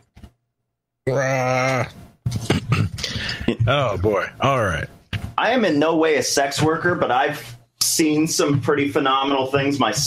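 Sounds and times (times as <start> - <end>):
person groaning: 1.0 - 4.0
broken vocal sounds: 1.0 - 4.3.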